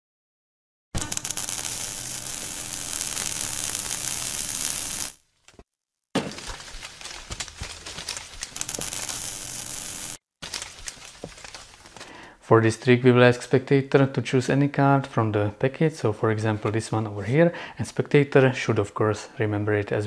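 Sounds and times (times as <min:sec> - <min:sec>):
crackling glassy noise: 0:01.0 - 0:05.2, 0:08.5 - 0:10.2.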